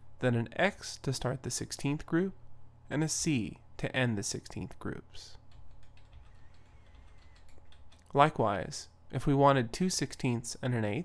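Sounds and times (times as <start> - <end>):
low electrical hum: 0.0 - 11.0
keyboard keystrokes: 5.5 - 8.1.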